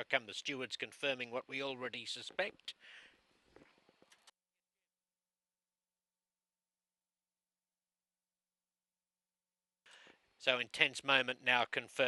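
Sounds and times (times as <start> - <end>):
faint background hiss: 0.0 - 4.3.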